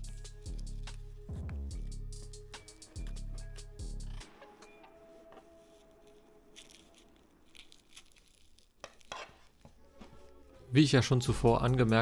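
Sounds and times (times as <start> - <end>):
velcro strap rustling: 5.4 - 10.4.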